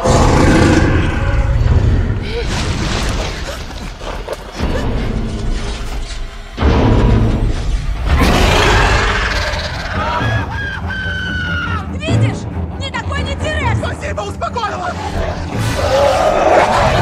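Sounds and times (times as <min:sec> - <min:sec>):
orchestral score: 0:03.4 - 0:17.0.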